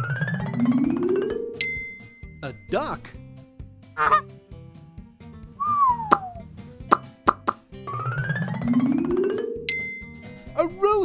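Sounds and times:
light music: 0.0 - 11.0
cartoon duck quack: 4.0 - 4.2
falling whistle: 5.6 - 6.4.

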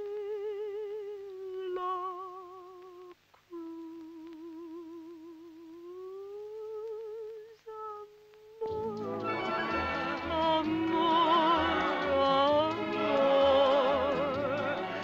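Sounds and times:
woman humming with vibrato: 3.5 - 9.0
orchestra playing: 8.9 - 15.0.

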